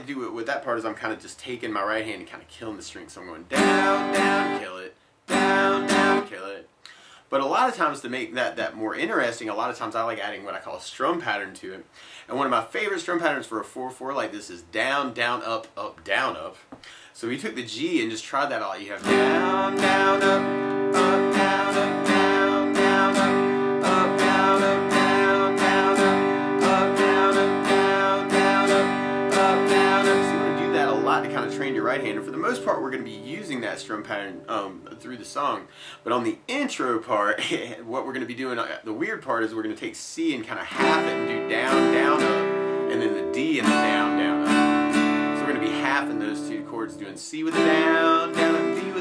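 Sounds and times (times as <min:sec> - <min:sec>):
acoustic guitar strummed: 0:03.5 - 0:06.4, 0:19.0 - 0:36.0, 0:40.7 - 0:49.0
guitar strings damped: 0:19.0 - 0:35.4.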